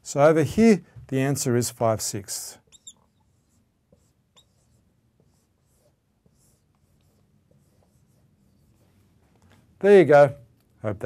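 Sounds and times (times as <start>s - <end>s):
marker squeaking on whiteboard: 2.6s - 8.9s.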